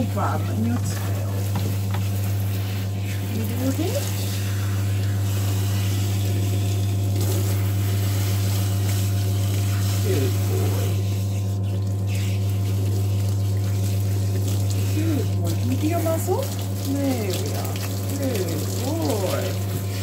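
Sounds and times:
pump humming: 0:00.0 - 0:20.0
water spraying from nozzle: 0:00.0 - 0:20.0.

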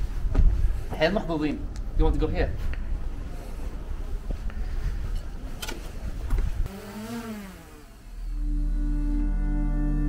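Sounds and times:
outdoor street noise: 0:00.0 - 0:10.0
motor pitch rising and falling: 0:06.7 - 0:10.0
ambient music with low tones: 0:08.2 - 0:10.0.

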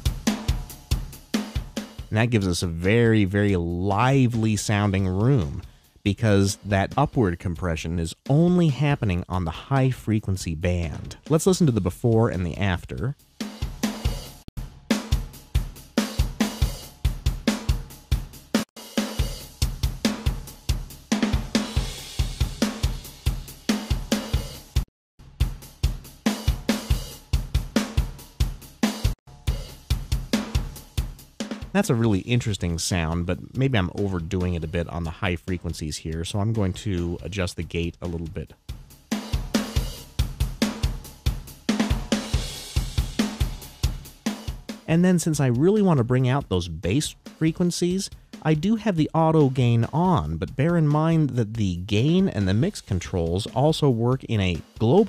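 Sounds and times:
acoustic drum kit groove: 0:00.0 - 0:55.0.

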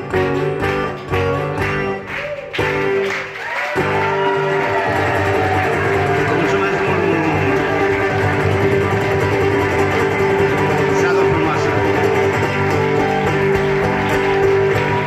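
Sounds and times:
acoustic guitar strumming: 0:00.0 - 0:15.0
audience clapping along: 0:00.0 - 0:15.0.

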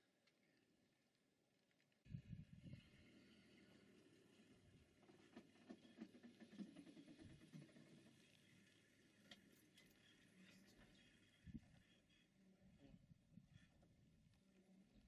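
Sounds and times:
faint low rumble: 0:02.0 - 0:05.0.

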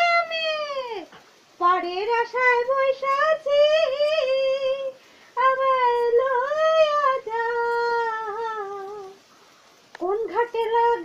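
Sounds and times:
faint click: 0:09.9 - 0:10.8.

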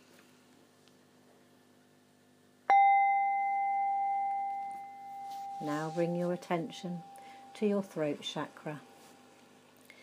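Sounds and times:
metal chime ringing: 0:02.7 - 0:07.8.

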